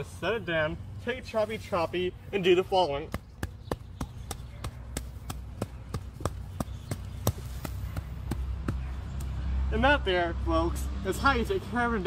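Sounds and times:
hatchet chopping into turf: 0:03.1 - 0:09.4.

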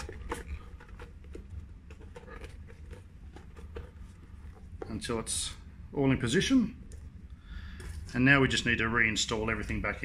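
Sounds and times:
rubber squeaking and rubbing: 0:00.0 - 0:04.9
faint low hum: 0:00.0 - 0:10.0.

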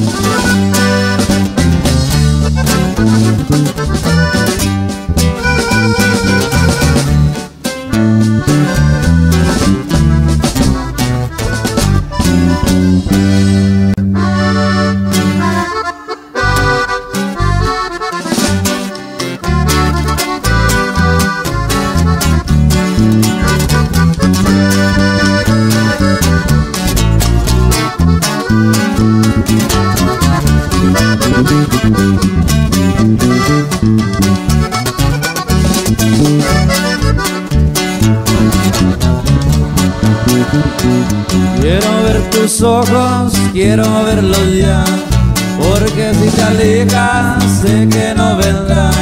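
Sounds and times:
accordion: 0:00.0 - 0:49.0
bass: 0:00.0 - 0:49.0
guitar: 0:00.0 - 0:49.0.

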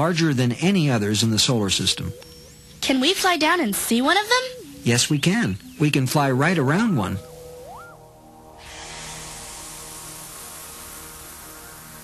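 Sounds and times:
faint electronic tones: 0:00.0 - 0:12.0
synthesized rushing hiss: 0:00.0 - 0:12.0.

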